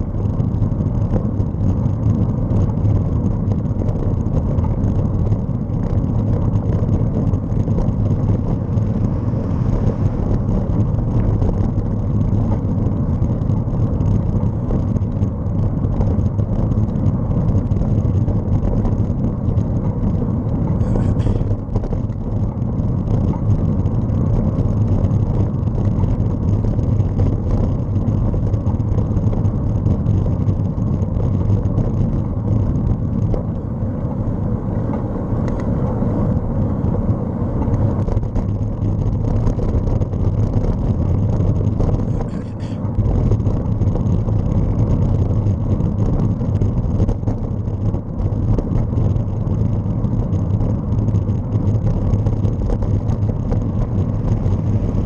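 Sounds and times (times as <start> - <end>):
road rumble: 0.0 - 55.0
wind buffeting microphone: 0.0 - 55.0.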